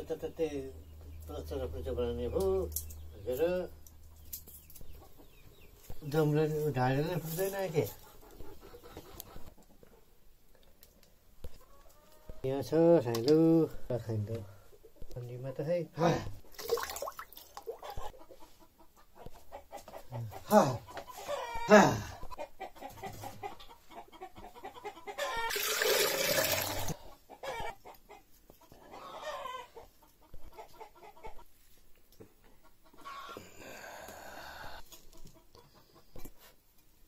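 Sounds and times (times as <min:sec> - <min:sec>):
chickens clucking: 0:00.0 - 0:15.5, 0:17.4 - 0:37.0.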